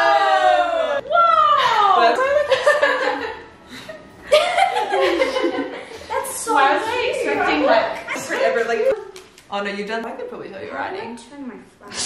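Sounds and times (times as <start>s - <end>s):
women laughing and chattering: 1.7s - 9.0s.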